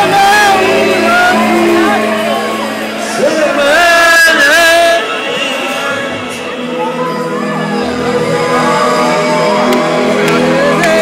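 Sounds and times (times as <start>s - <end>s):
person singing: 0.0s - 11.0s
pop band playing live: 0.0s - 11.0s.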